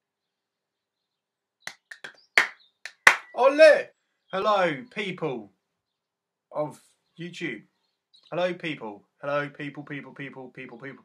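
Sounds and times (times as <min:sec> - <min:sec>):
sharp hand claps: 0:01.7 - 0:03.4.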